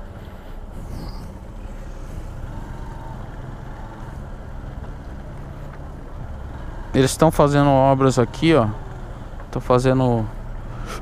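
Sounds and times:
motorcycle engine running: 0:00.0 - 0:10.9.

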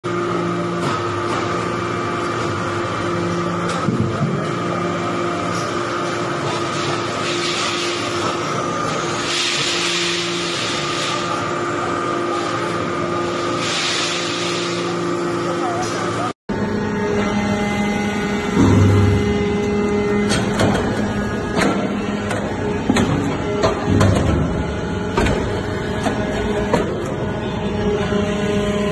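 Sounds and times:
hydraulic press humming: 0:00.1 - 0:28.9
steady machine sound: 0:00.1 - 0:28.9.

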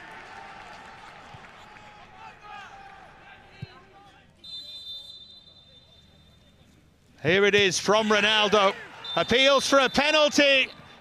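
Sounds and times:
referee's whistle blast: 0:04.4 - 0:06.4, 0:09.0 - 0:11.0.

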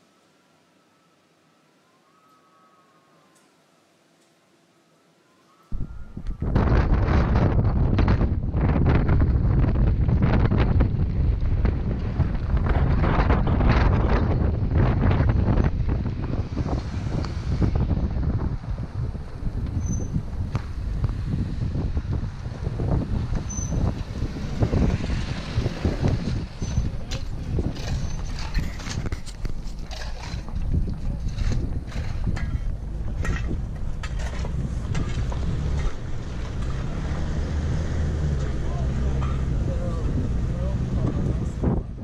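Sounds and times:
wind buffeting microphone: 0:05.7 - 0:42.0
car rumbling on dirt road: 0:06.4 - 0:42.0.

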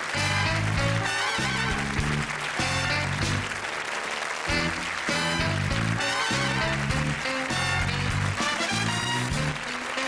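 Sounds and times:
studio audience applauding: 0:00.0 - 0:10.0.

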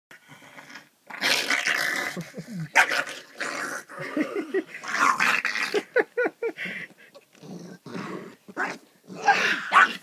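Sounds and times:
dog growling: 0:07.4 - 0:10.0.

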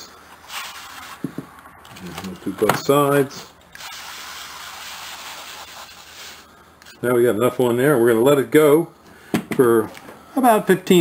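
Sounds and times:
aerosol can spraying: 0:03.8 - 0:07.0.

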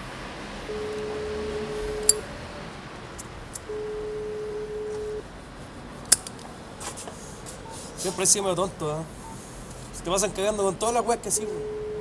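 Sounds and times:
telephone ringback beep: 0:00.7 - 0:02.2, 0:03.7 - 0:05.2, 0:11.4 - 0:12.0.

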